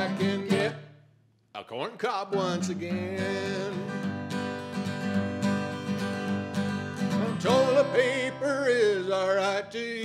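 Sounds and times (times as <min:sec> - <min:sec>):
man singing: 0:00.0 - 0:00.9, 0:01.6 - 0:04.1, 0:07.0 - 0:10.0
acoustic guitar strumming: 0:00.0 - 0:01.1, 0:02.0 - 0:10.0.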